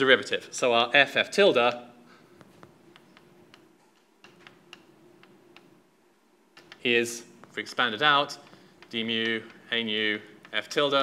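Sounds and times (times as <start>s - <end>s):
faint room hum: 0.0s - 11.0s
chalk clicking on blackboard: 2.6s - 5.8s, 6.6s - 11.0s.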